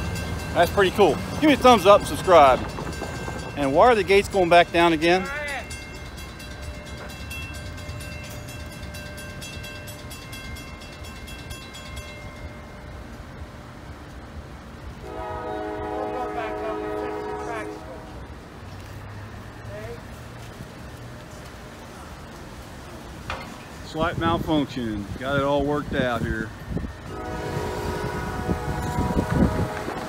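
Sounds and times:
crossing warning bell ringing: 0.0s - 18.4s, 23.3s - 30.0s
train horn chord: 15.0s - 18.3s, 27.0s - 30.0s.

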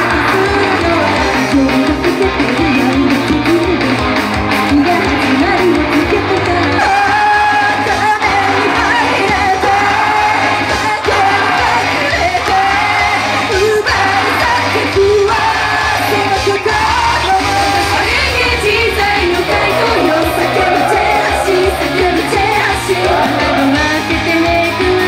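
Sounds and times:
women singing into microphones: 0.0s - 4.0s, 4.7s - 25.0s
pop-rock song over loudspeakers: 0.0s - 25.0s.

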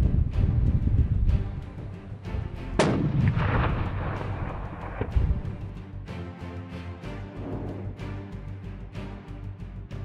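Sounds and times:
rifle shot with rolling echo: 2.8s - 5.1s.

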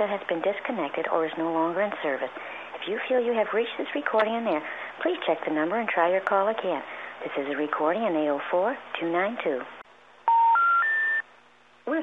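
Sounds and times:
rising phone line beeps: 10.2s - 11.3s.

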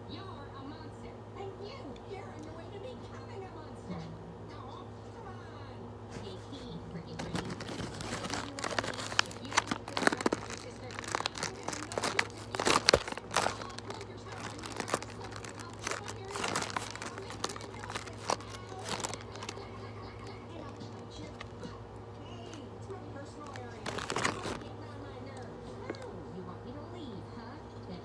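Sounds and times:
steady low hum: 0.0s - 28.0s
package crinkling: 7.2s - 26.1s.

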